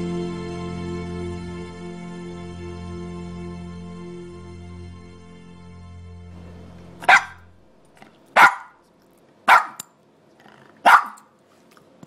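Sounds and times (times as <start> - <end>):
dog barking: 7.0 - 7.5, 8.4 - 8.8, 9.5 - 9.9, 10.8 - 11.3.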